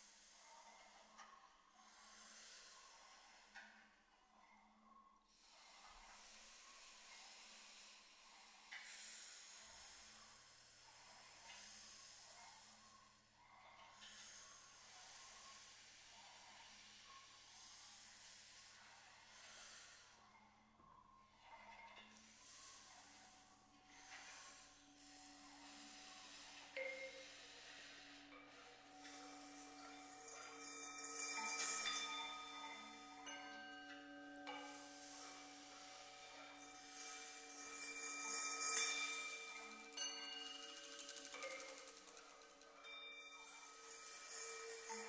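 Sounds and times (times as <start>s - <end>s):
breathy hissing voices: 0.0s - 4.1s, 5.3s - 45.0s.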